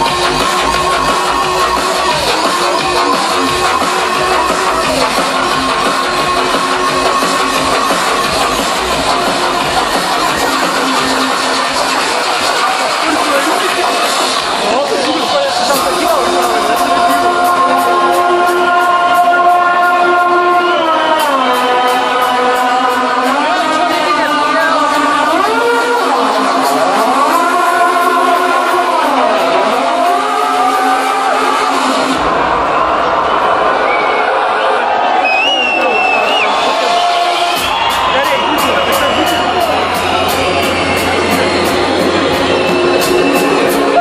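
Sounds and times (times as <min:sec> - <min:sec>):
crowd noise: 0:00.0 - 0:44.0
drum and bass music: 0:00.0 - 0:44.0.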